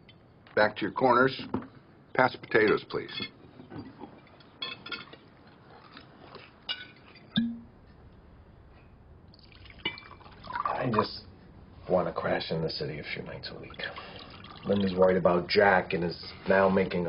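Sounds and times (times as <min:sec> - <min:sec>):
glasses and cutlery clinking: 0:02.6 - 0:05.2, 0:06.7 - 0:07.6
liquid pouring into glass: 0:09.3 - 0:10.8, 0:13.6 - 0:15.0.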